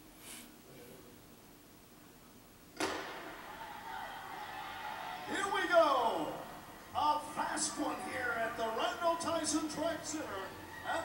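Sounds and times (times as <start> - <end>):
starting gun crack: 2.8 - 3.4.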